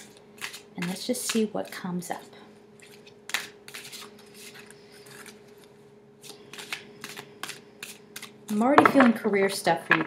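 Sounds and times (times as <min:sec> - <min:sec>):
cards being shuffled: 0:02.8 - 0:08.4.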